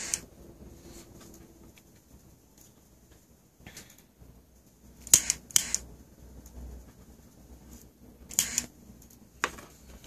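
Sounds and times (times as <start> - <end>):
sharp dry clicks: 5.0 - 5.9, 8.3 - 8.7.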